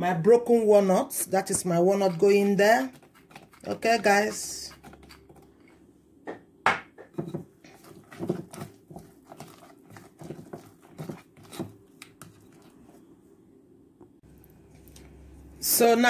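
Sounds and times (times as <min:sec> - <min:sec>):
spatula stirring batter in glass bowl: 0:00.5 - 0:05.7, 0:07.2 - 0:13.1.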